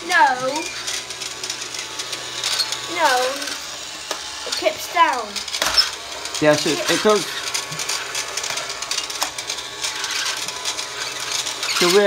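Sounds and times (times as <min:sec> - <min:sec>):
toy vacuum cleaner whining: 0:00.0 - 0:12.0.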